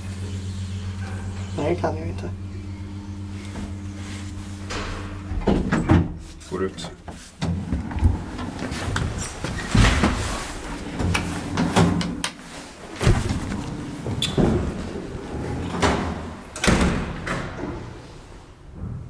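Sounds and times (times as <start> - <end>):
elevator doors knocking and clunking: 4.7 - 6.2, 13.0 - 19.0
footsteps: 12.6 - 15.4.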